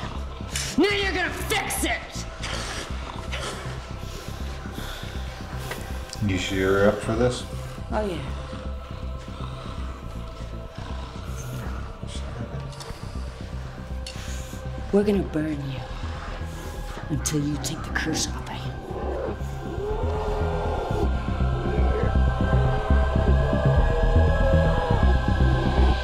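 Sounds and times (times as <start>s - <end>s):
dark film score with low drone: 0.0s - 26.0s.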